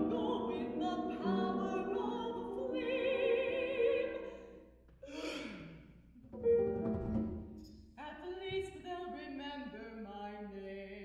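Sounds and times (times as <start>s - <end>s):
person singing with vibrato: 0.0s - 5.8s
person sighing breathily: 5.0s - 5.9s.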